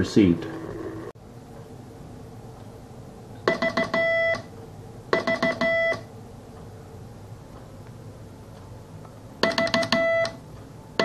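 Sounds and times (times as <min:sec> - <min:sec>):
morse code beeps: 0:03.4 - 0:04.5, 0:05.1 - 0:06.1, 0:09.4 - 0:10.4.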